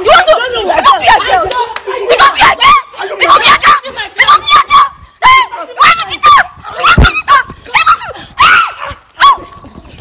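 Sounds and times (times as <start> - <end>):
women yelling and shrieking: 0.0 - 9.6.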